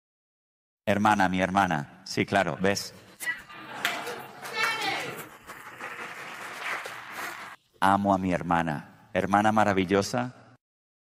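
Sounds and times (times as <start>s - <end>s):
high voice above crowd: 3.2s - 5.3s
audience laughing and murmuring: 3.2s - 7.6s.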